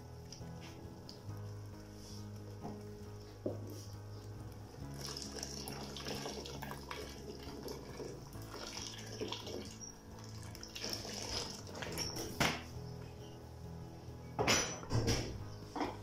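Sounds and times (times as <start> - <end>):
water pouring into a pot: 4.8 - 12.2.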